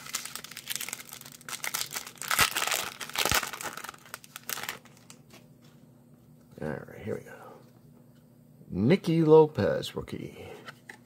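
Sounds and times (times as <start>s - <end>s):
foil wrapper crinkling: 0.0s - 5.4s.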